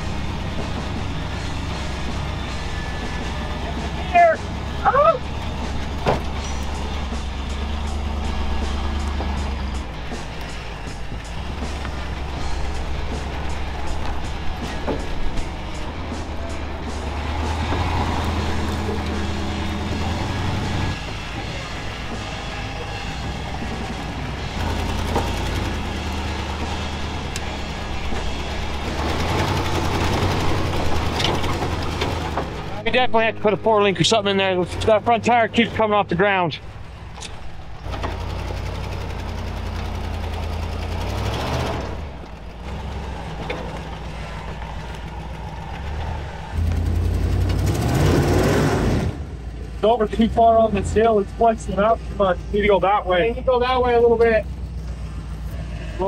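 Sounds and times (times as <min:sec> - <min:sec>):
truck engine running at low speed: 0:00.0 - 0:56.0.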